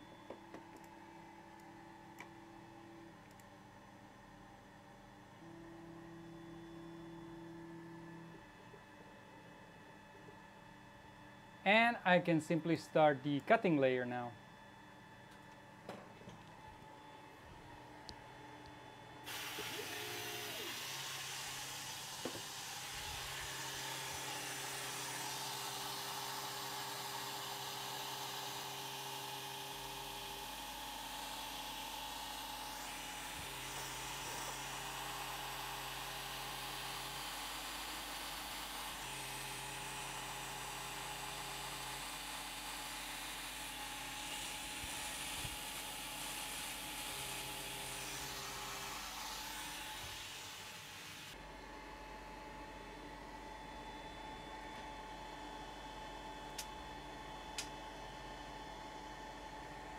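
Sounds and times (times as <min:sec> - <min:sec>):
stepper motors humming: 0:19.3 - 0:28.6.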